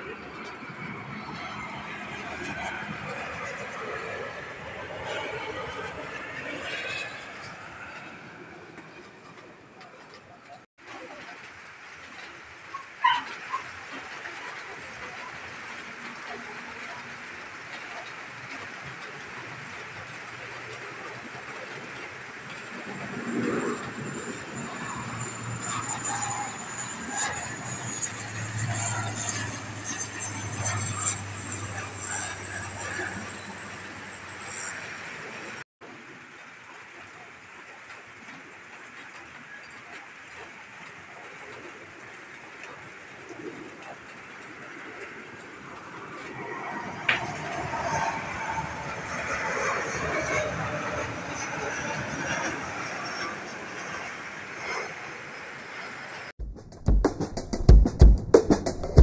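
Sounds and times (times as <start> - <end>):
airliner engines passing: 0.0 - 59.0
propeller drone: 0.0 - 59.0
high steady engine whine: 18.5 - 35.6
sharp knock: 56.4 - 59.0.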